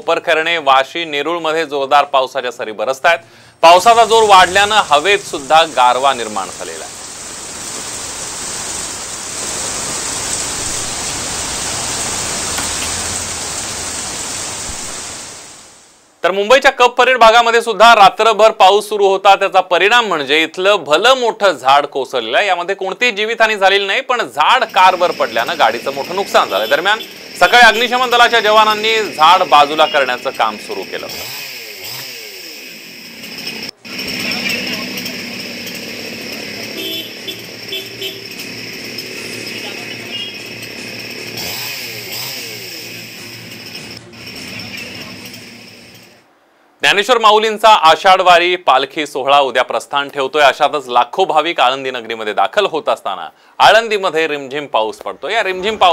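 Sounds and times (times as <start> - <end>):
chainsaw engine running: 3.6 - 6.5, 24.5 - 46.2
heavy rain falling: 3.7 - 16.0.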